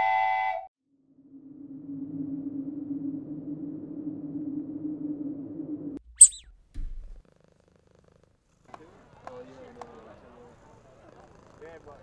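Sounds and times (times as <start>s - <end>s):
low steady growl: 1.0s - 6.0s
sharp high-pitched squeak: 6.2s - 6.5s.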